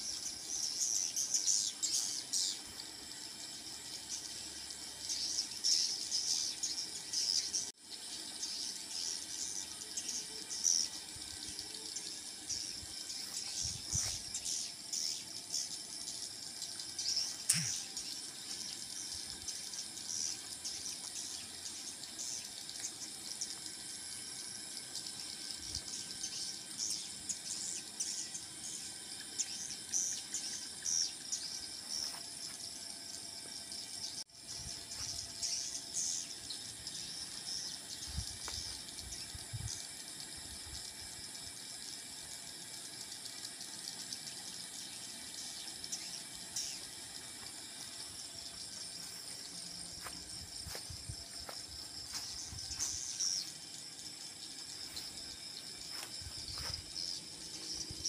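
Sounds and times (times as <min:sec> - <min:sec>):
birds twittering: 0:00.0 - 0:58.0.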